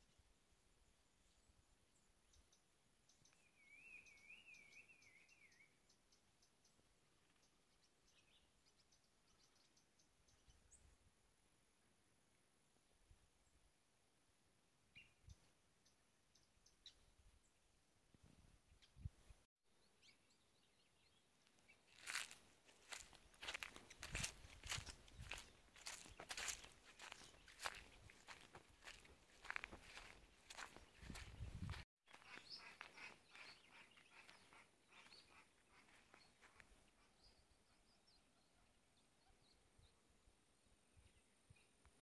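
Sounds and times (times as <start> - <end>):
footsteps crunching on twigs: 21.9 - 34.4.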